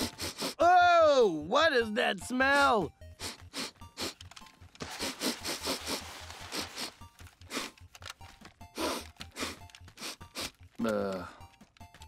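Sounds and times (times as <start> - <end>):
cartoon bear sniffing: 0.0 - 0.6, 3.1 - 7.8, 8.7 - 10.6
background music: 0.0 - 12.0.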